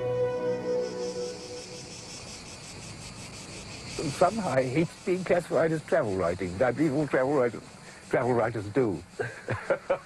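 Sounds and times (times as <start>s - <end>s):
background music: 0.0s - 2.1s
insects chirring: 0.0s - 10.0s.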